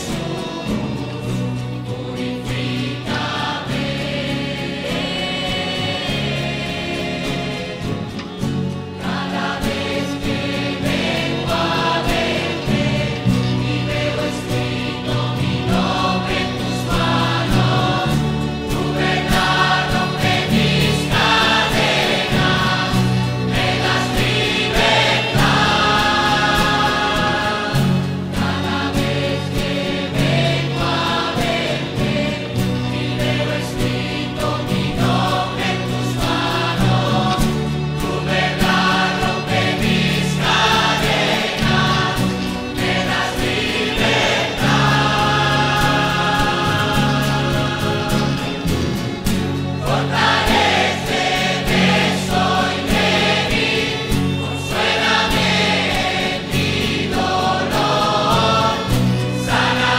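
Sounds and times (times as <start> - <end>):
choir singing held chords: 0.0 - 59.9
instrumental backing with bass: 0.0 - 59.9.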